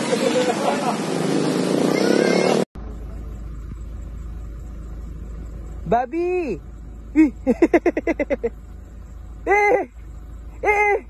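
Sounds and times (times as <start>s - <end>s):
steady low rumble: 2.8s - 11.0s.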